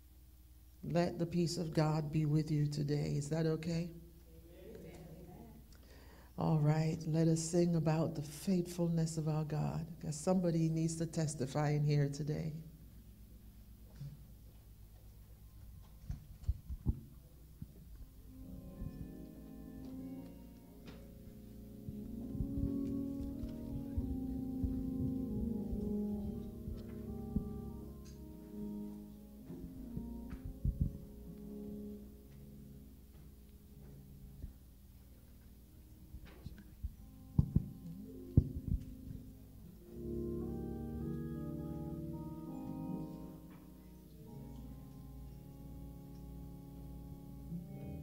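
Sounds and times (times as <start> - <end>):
organ holding chords: 6.4 - 16.2, 17.3 - 48.0
held keyboard notes: 6.5 - 48.0
low thumps: 21.0 - 28.8, 29.4 - 31.3, 36.1 - 40.2.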